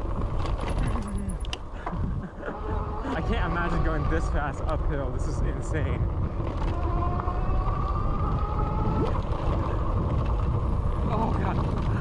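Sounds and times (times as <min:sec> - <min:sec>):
tyres on dirt trail: 0:00.0 - 0:12.0
wind rumbling on microphone: 0:00.0 - 0:12.0
electric bike motor whining: 0:02.4 - 0:12.0.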